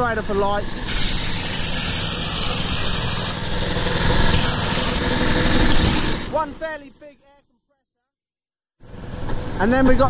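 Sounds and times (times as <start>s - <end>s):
generator engine running: 0.0s - 7.3s, 8.8s - 10.0s.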